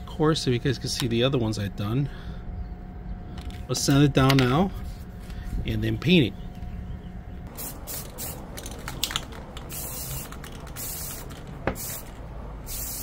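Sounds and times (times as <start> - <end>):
spray paint can hissing: 7.5 - 13.0.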